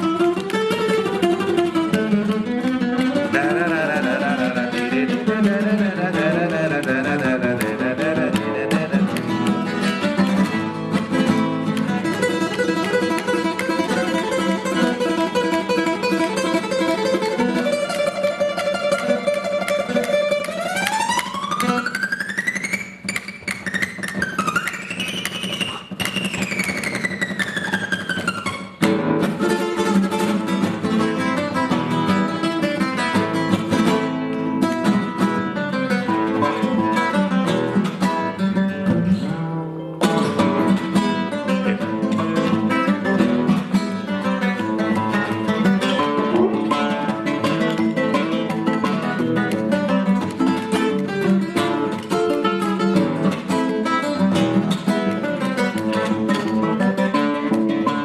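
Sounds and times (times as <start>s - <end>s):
fingerstyle acoustic guitar: 0.0s - 58.0s.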